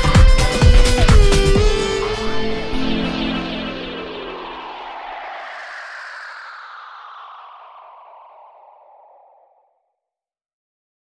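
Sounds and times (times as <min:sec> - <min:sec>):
soft hissing whoosh: 0:01.9 - 0:09.7.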